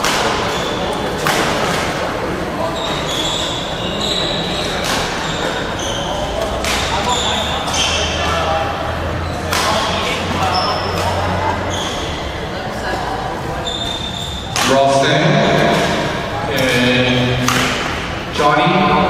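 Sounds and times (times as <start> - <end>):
racket hitting shuttlecock: 0.0 - 0.5, 1.2 - 2.0, 4.8 - 5.6, 6.4 - 7.2, 9.4 - 10.0, 17.4 - 18.2
shoes squeaking on court: 0.4 - 1.8, 2.6 - 8.5, 9.2 - 12.4, 13.6 - 14.6.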